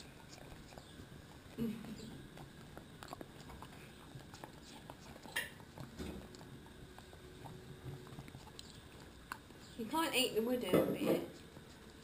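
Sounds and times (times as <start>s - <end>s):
dog licking and smacking: 0.0s - 9.8s.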